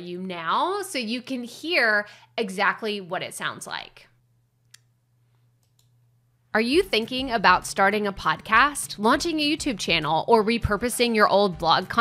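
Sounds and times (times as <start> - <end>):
computer mouse click: 5.6 - 6.0.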